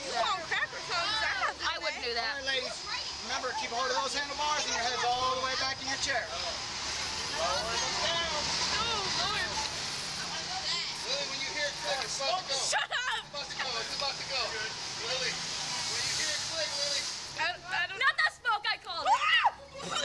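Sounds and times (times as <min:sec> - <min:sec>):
indistinct voices talking: 0:00.0 - 0:20.0.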